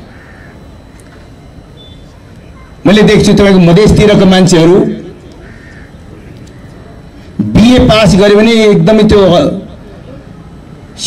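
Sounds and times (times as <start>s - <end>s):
crow cawing: 0.0s - 0.7s, 5.3s - 6.8s.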